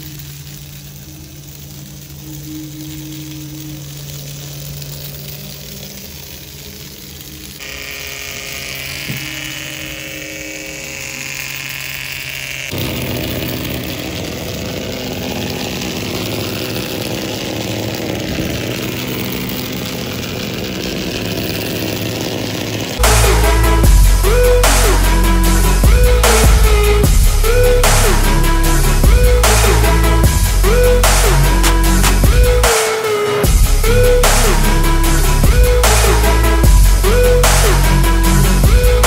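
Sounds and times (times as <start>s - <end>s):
toy motor whirring: 0.0s - 39.0s.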